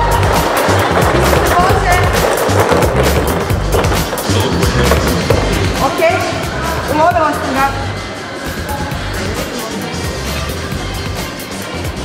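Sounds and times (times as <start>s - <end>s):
music with steady beat: 0.0s - 12.0s
plastic capsules rattling down tube: 0.2s - 5.5s.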